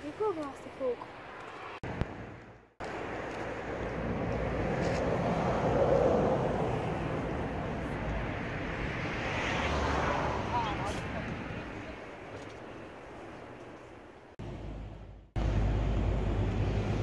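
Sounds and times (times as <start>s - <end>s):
vehicle passing: 0.7s - 12.3s.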